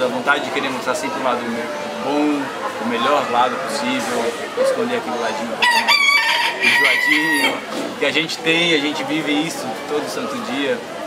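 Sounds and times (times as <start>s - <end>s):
rooster crowing: 5.6s - 7.6s.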